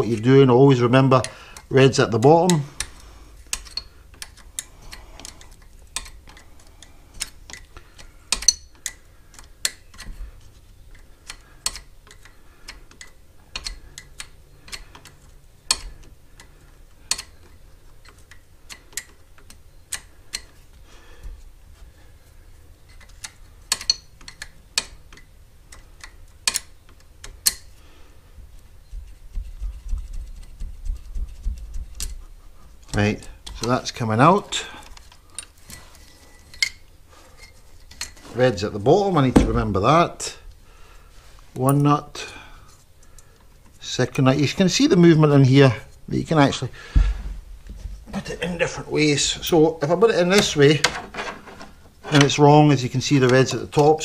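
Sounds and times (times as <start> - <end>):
spanner clicking on metal nuts: 3.5 - 7.7, 8.3 - 10.1, 10.9 - 16.1, 17.1 - 20.6, 22.9 - 27.7.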